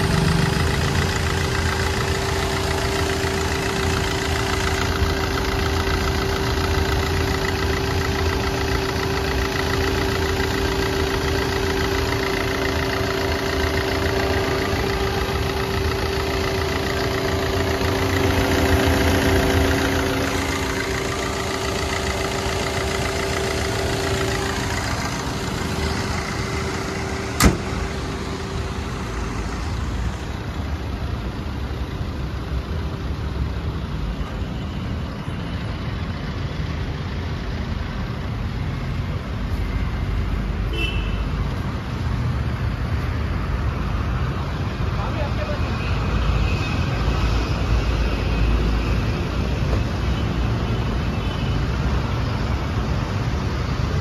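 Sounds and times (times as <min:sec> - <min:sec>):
diesel engine idling: 0:00.0 - 0:54.0
sharp knock: 0:27.4 - 0:27.8.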